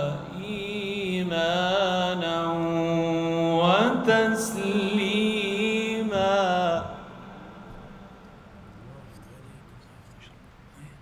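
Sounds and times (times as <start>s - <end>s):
man reciting melodically: 0.0s - 7.3s.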